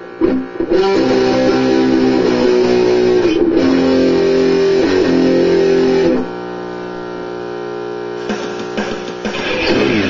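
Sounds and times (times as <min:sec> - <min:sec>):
electric guitar chord ringing: 0:00.0 - 0:06.4.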